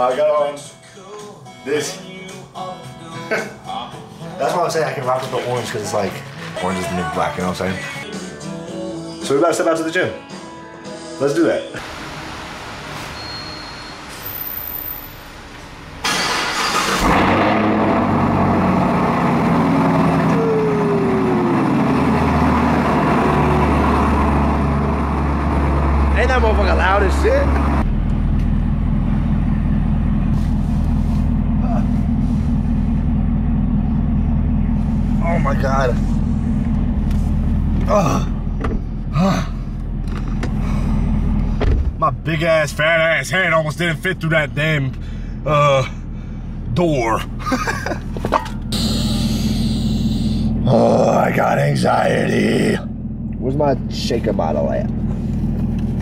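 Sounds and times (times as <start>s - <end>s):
car engine starting and idling: 11.8s - 56.0s.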